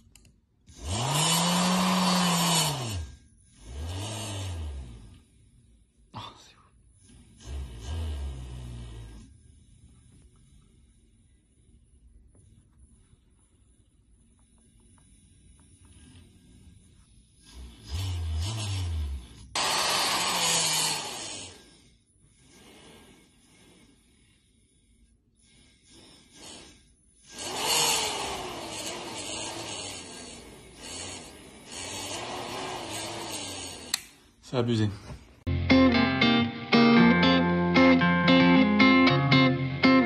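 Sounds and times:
small electric motor whirring: 0.7 - 5.0, 17.5 - 21.8, 26.4 - 34.2.

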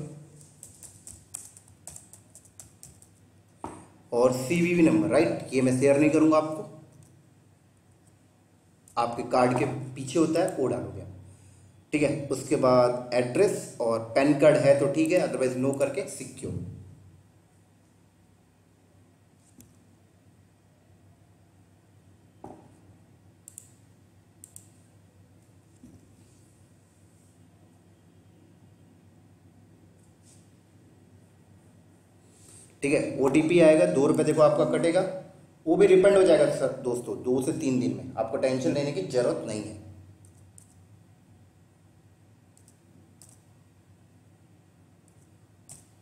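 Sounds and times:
computer mouse clicks: 0.4 - 3.8, 23.4 - 23.8, 24.4 - 24.8, 40.2 - 40.8, 42.5 - 43.5, 45.0 - 46.0
small knock: 22.4 - 22.7.

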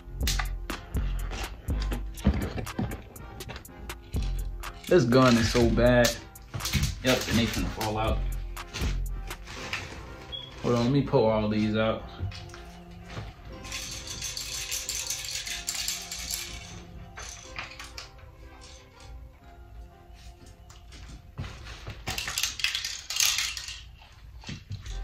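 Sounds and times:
background music: 0.0 - 25.0
plastic pellets rattling in toy gun: 4.7 - 8.2, 13.6 - 17.9, 22.1 - 24.1.

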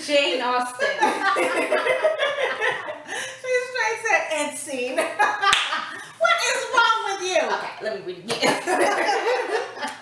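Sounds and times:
woman laughing: 0.8 - 3.5
hands smacking: 5.5 - 5.8.

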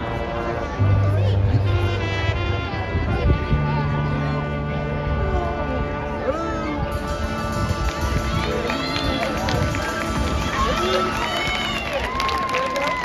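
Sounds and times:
marching band music: 0.0 - 12.3
stadium crowd shouting: 7.0 - 13.0.

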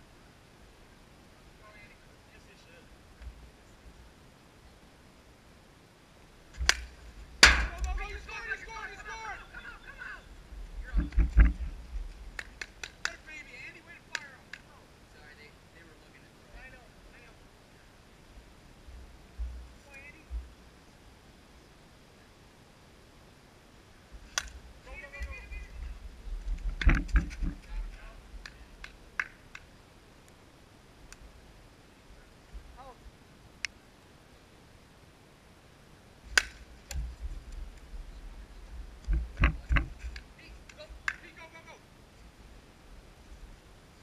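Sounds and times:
plastic ball hitting plastic bat: 6.6 - 7.9, 36.4 - 37.0
players shouting: 7.4 - 10.3
wind rumble on microphone: 10.3 - 12.4, 24.1 - 28.8, 36.9 - 40.2.

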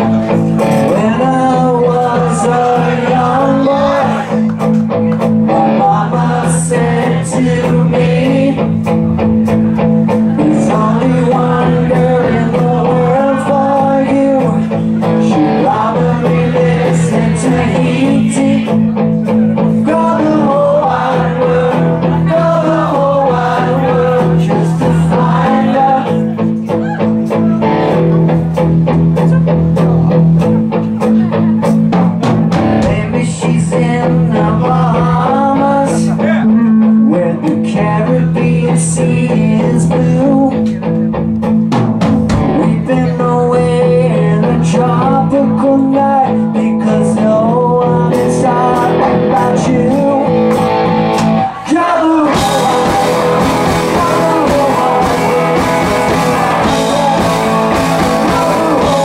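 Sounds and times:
man singing lead vocal: 0.0 - 27.7, 32.8 - 41.2, 42.3 - 59.0
bass guitar: 0.0 - 59.0
drum kit: 0.0 - 59.0
electric guitars: 0.0 - 59.0.

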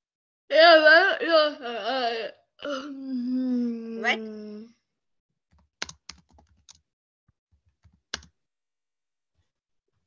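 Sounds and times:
typing on computer keyboard: 5.5 - 6.8, 7.6 - 8.3.

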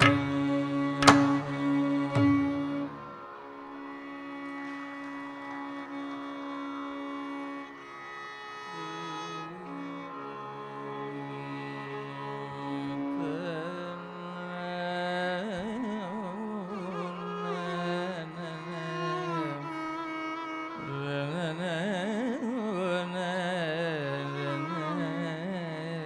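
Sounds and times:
slow classical vocal melody: 8.7 - 26.0.

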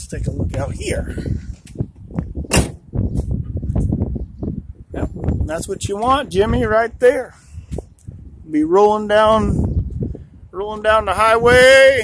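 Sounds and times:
wind rumble on microphone: 0.0 - 12.0
phone microphone handling noise: 0.3 - 4.2
sharp knock: 2.5 - 2.9.

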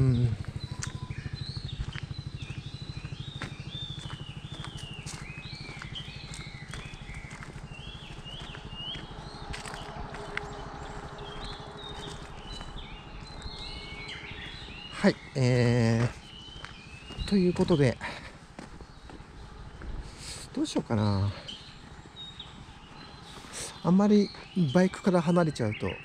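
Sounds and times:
low rapid throb: 0.0 - 24.7
birds whistling: 0.0 - 26.0.

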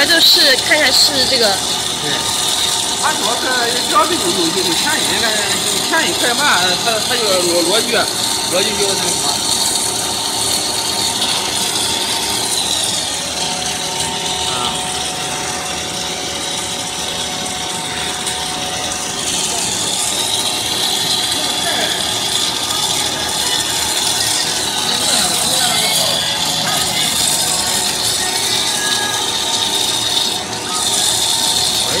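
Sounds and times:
snack extruder machine drone: 0.0 - 32.0.

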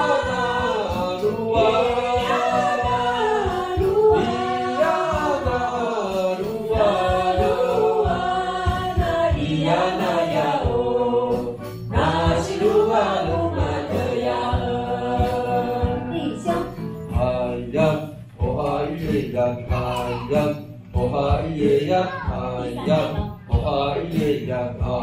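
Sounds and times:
group of voices singing: 0.0 - 25.0
hand drum beat: 0.0 - 25.0
woman singing into a microphone: 15.2 - 17.0, 22.1 - 23.6.

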